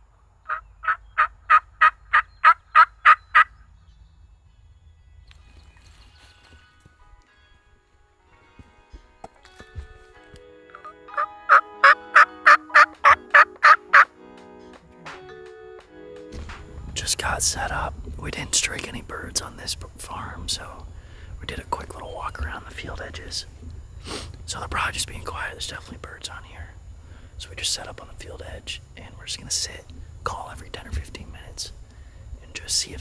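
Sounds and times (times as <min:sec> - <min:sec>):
turkey call hen yelps: 0:00.5 - 0:03.5
soft background music: 0:04.4 - 0:20.8.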